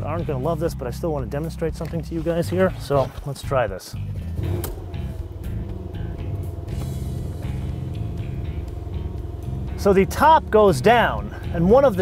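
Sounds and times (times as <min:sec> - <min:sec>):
car engine idling: 0:04.0 - 0:12.0
convertible roof motor humming: 0:04.2 - 0:12.0.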